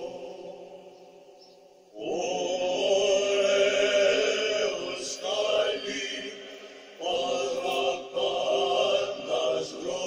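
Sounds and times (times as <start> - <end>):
voices chanting: 0.0 - 10.0.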